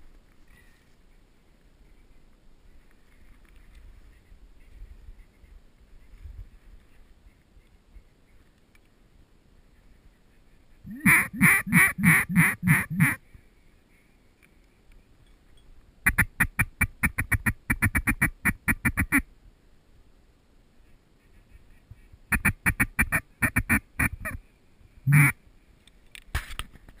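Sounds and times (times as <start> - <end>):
duck quacking: 10.9 - 13.2, 16.1 - 19.2, 22.3 - 24.4, 25.1 - 25.4.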